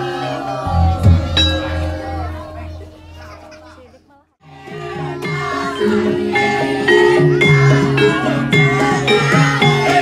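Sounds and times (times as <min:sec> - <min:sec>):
children's voices: 0:00.0 - 0:04.0, 0:04.7 - 0:10.0
gamelan music: 0:00.5 - 0:03.9, 0:04.7 - 0:10.0.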